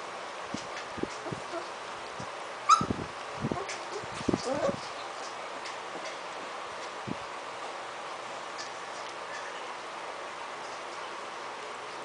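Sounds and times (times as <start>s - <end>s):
puppy yelping: 2.7s - 3.0s, 3.6s - 4.8s
puppies scuffling: 3.5s - 7.0s.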